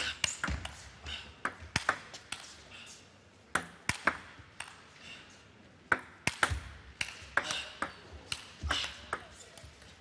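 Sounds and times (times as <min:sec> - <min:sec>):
table tennis ball bouncing: 0:05.9 - 0:08.5.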